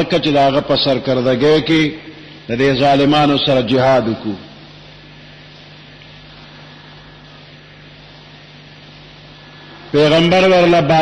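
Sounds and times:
constant low hum: 0.0 - 11.0
steady hiss: 0.0 - 11.0.

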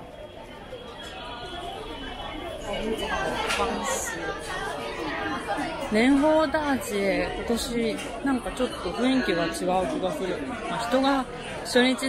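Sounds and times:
crowd chattering: 0.0 - 12.0.

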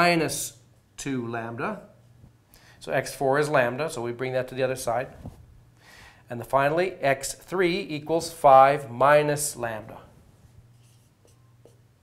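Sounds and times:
low steady hum: 0.0 - 12.0
marker writing on whiteboard: 10.7 - 11.9.

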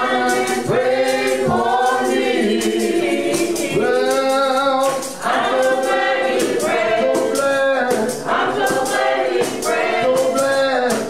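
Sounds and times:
group singing gospel song: 0.0 - 11.0.

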